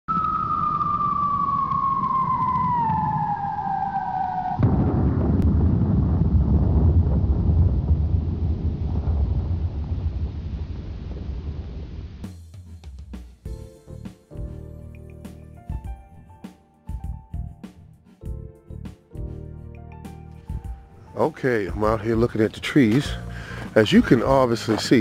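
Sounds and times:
tone gliding downward: 0.1s - 4.7s
low rumble: 0.1s - 12.3s
deep boom: 4.6s - 12.3s.

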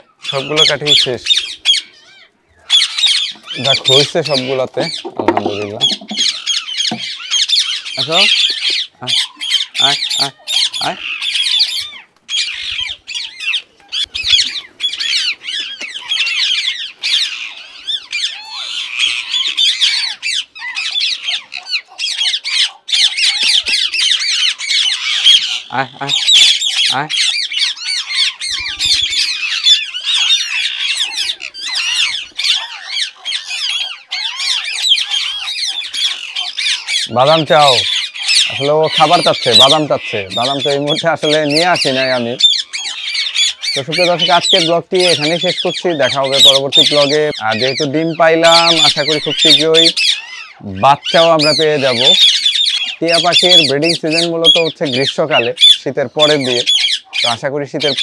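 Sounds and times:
parakeets squawking and chattering: 0.0s - 58.0s.

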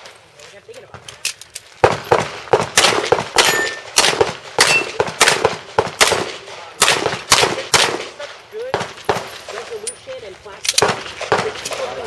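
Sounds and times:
pistol shots fired rapidly: 1.8s - 9.3s, 10.8s - 12.0s.

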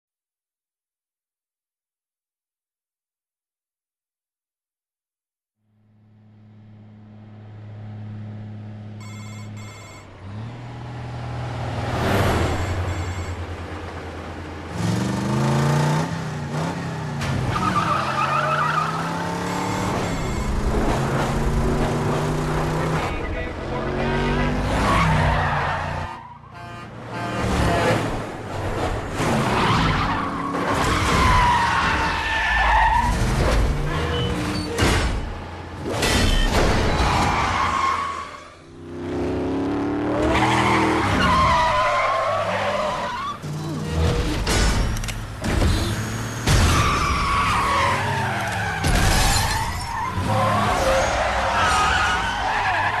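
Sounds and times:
vehicle engines revving: 6.1s - 53.0s
tire squeal: 17.4s - 20.6s, 24.2s - 26.7s, 29.3s - 33.2s, 33.8s - 34.8s, 36.2s - 38.6s, 40.2s - 44.4s, 45.6s - 53.0s.

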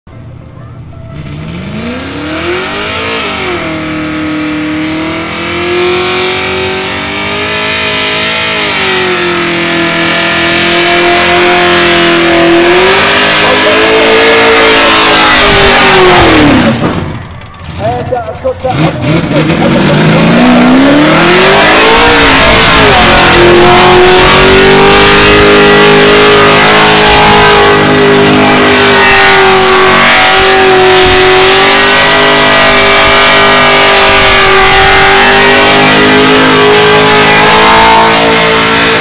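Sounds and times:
car engine revving high: 1.2s - 39.0s.

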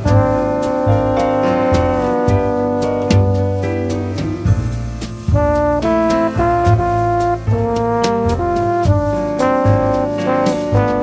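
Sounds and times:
brass section playing chords: 0.0s - 4.4s, 5.3s - 11.0s
bass: 0.0s - 11.0s
drums: 0.0s - 11.0s.

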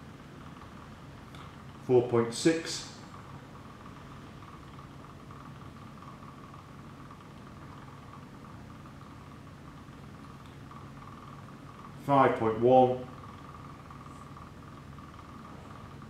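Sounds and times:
lab equipment humming: 0.0s - 16.0s.

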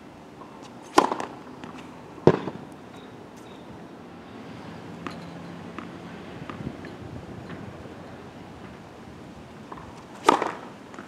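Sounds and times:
racket striking tennis ball: 0.6s - 2.6s, 9.7s - 11.0s.

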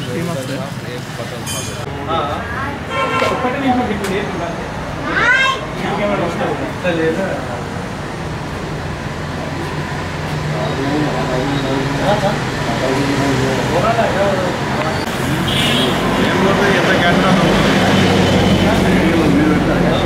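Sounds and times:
indistinct voices: 0.0s - 20.0s
street traffic: 0.0s - 20.0s
vehicle engine hum: 6.0s - 20.0s.

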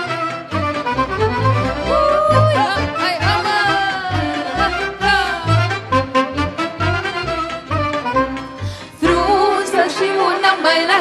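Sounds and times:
lively folk dance tune: 0.0s - 11.0s.

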